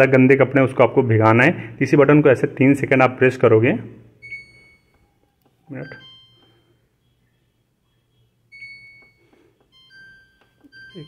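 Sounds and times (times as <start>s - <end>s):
washing machine panel beeps: 4.2s - 6.8s, 8.5s - 11.0s.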